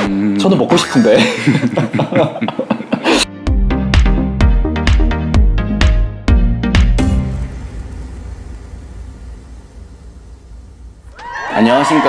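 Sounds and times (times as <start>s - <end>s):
low steady rumble: 7.0s - 11.2s
faint hiss: 7.0s - 11.9s.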